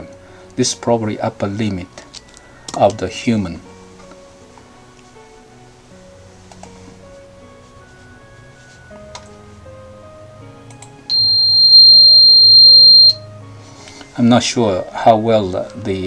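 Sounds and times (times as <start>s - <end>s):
soft background music: 0.0s - 16.0s
loud steady high tone: 11.1s - 13.3s.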